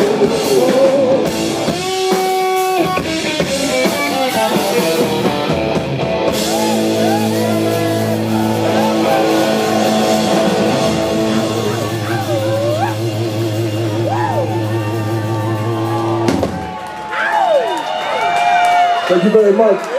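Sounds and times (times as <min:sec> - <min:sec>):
electric guitar bending notes: 0:00.0 - 0:16.9
drum kit playing: 0:00.0 - 0:17.1.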